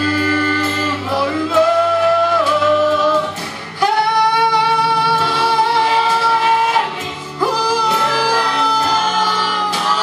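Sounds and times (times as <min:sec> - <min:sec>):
vocal group singing in harmony: 0:00.0 - 0:10.0.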